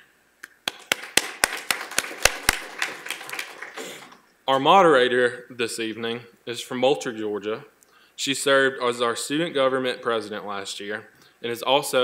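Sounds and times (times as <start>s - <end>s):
sparse applause: 0.6s - 4.3s.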